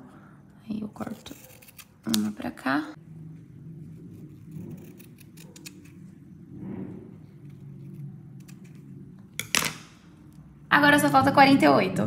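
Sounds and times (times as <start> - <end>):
scissors snipping ribbon: 1.0 - 2.5
scissor blades clicking: 4.8 - 6.0.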